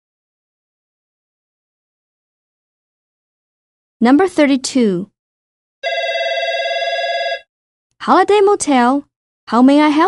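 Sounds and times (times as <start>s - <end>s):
telephone ringing: 5.8s - 7.5s.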